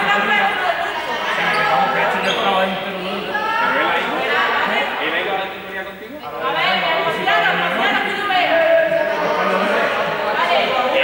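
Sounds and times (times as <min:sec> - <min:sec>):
indistinct chatter in echoing hall: 0:00.0 - 0:11.0.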